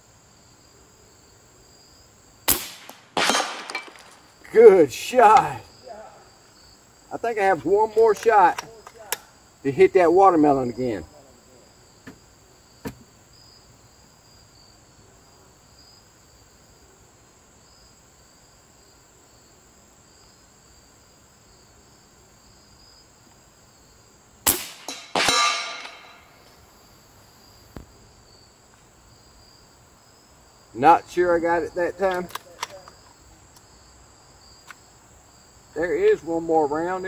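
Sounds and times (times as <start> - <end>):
insects buzzing: 0.0 - 37.0
silenced air rifle shot: 2.5 - 4.2, 24.4 - 26.5.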